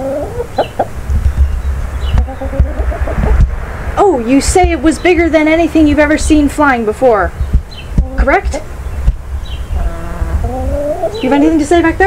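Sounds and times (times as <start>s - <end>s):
chicken clucking: 0.0s - 3.5s, 9.6s - 11.9s.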